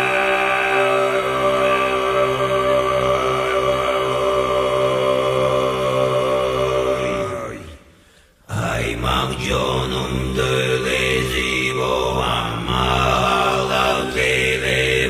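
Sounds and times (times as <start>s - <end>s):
low droning chant: 0.0s - 15.0s.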